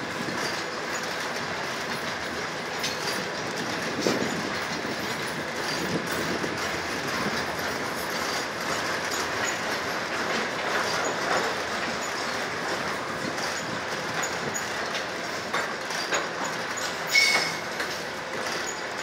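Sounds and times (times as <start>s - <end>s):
freight train rolling past: 0.0s - 19.0s
knocks from wheels and couplings: 0.1s - 19.0s.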